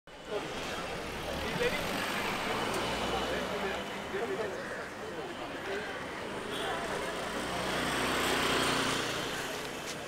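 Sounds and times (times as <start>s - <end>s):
crowd of people talking: 0.1s - 10.0s
road traffic: 0.1s - 10.0s.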